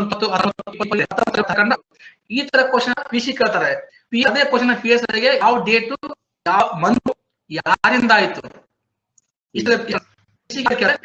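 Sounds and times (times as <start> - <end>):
person speaking over video call: 0.0 - 8.8, 9.6 - 11.0.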